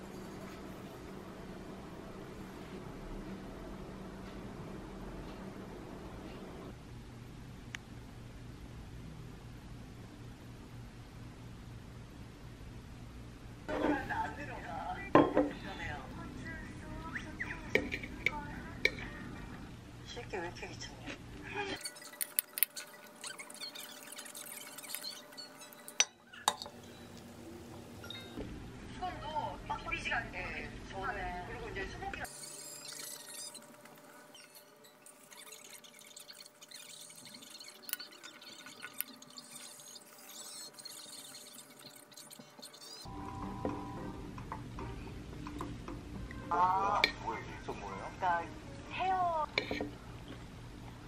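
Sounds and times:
tableware knock: 0:15.2 - 0:15.5
spoon scraping ceramic plate: 0:17.7 - 0:19.1, 0:21.8 - 0:27.1, 0:32.2 - 0:43.1
wet eating sounds: 0:32.3 - 0:43.1.

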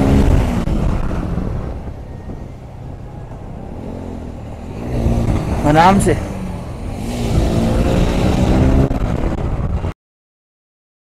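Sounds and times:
motorcycle engine accelerating: 0:00.0 - 0:09.9
wind noise: 0:00.0 - 0:10.0.

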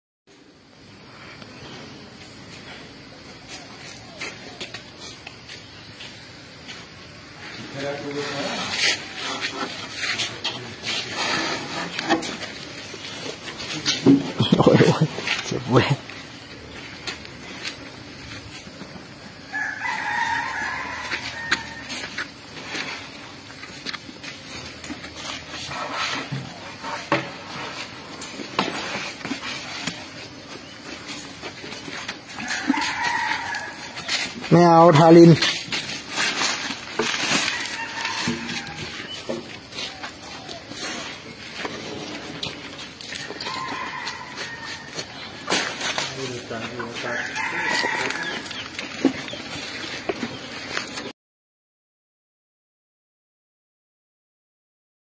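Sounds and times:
elephant calves calling: 0:24.9 - 0:50.6.

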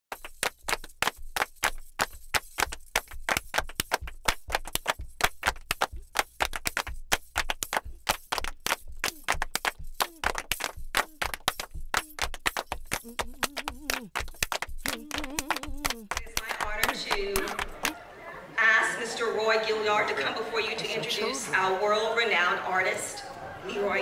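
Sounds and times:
fast rhythmic percussion: 0:00.1 - 0:18.0
wavering pitched voice or instrument: 0:09.0 - 0:12.3, 0:12.9 - 0:14.2, 0:14.8 - 0:16.2.

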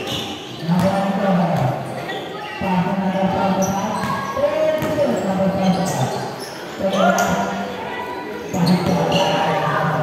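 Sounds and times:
basketball bouncing on hard court: 0:04.0 - 0:05.0.

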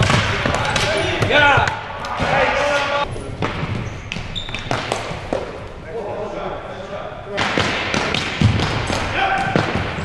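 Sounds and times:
players' indistinct calls: 0:00.0 - 0:10.0.

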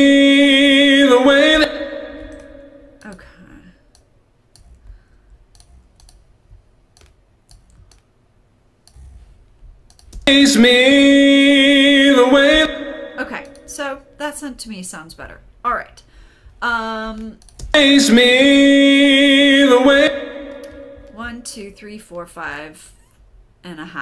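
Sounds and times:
man singing note with vibrato: 0:00.0 - 0:03.2, 0:10.3 - 0:14.0, 0:17.7 - 0:21.6.

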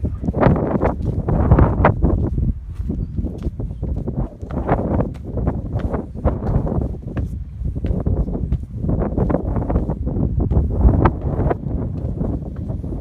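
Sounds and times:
footsteps on concrete stairs: 0:00.0 - 0:13.0
wind buffeting microphone: 0:00.0 - 0:13.0.

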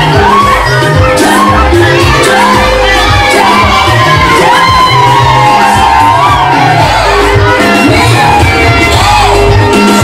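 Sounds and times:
loud music with bass beat: 0:00.0 - 0:10.0
women singing along and cheering: 0:00.0 - 0:10.0.

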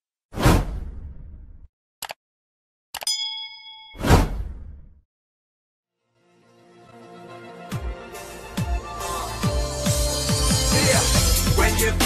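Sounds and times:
bell-like ding: 0:03.0 - 0:04.1.

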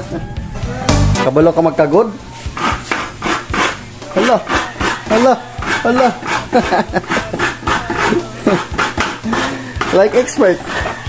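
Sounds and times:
coconut scraping on grater blade: 0:02.5 - 0:11.0.

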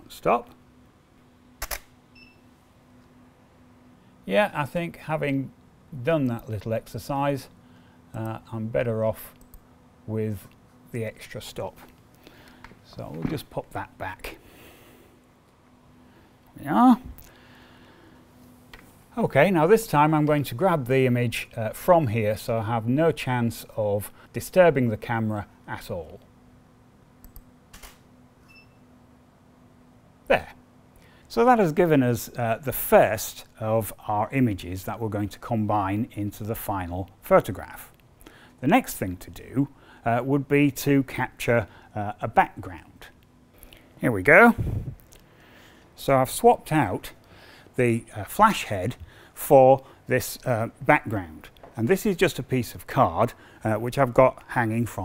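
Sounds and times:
faint low hum: 0:00.0 - 0:55.0
camera shutter firing: 0:01.6 - 0:01.9, 0:27.7 - 0:28.0
faint high beep: 0:02.2 - 0:02.4, 0:28.5 - 0:28.8
computer mouse clicks: 0:27.2 - 0:28.0.

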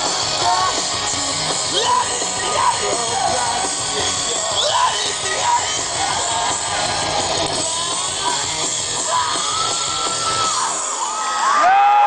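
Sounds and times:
rock band playing live: 0:00.0 - 0:11.4
people cheering and whooping: 0:09.0 - 0:12.0.

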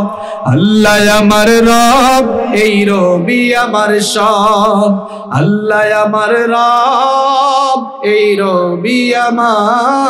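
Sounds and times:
man chanting into microphone: 0:00.0 - 0:10.0.

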